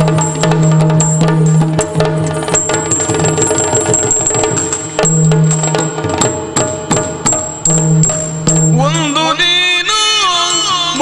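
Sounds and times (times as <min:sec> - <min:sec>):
high bell-like ringing: 0:00.0 - 0:09.3
drum strokes: 0:00.0 - 0:09.6.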